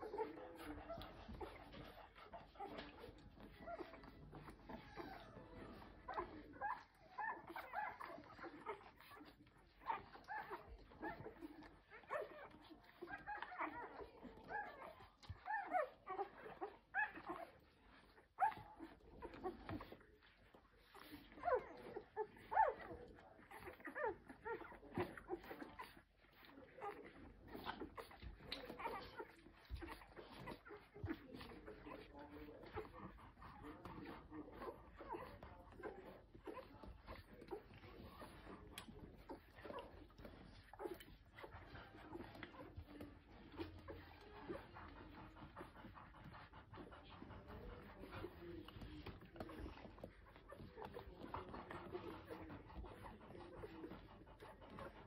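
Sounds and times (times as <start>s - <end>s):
puppies squeaking and whimpering: 0.0s - 55.0s.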